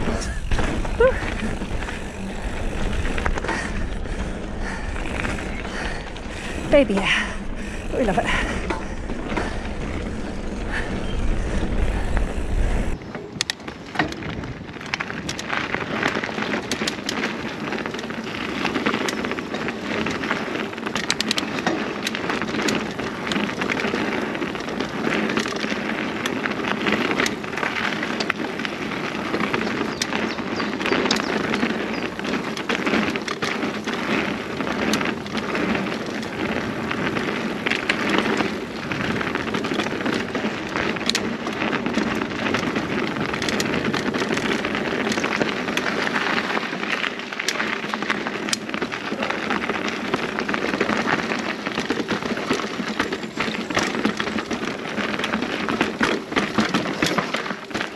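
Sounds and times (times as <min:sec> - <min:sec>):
bike clicks and rattles: 0:00.0 - 0:57.9
bike tyres on gravel trail: 0:00.0 - 0:57.9
wind rumble on microphone: 0:00.0 - 0:57.9.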